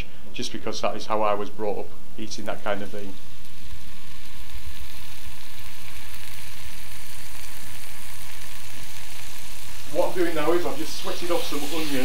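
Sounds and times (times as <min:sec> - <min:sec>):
onions sizzling in butter: 0:02.2 - 0:12.0.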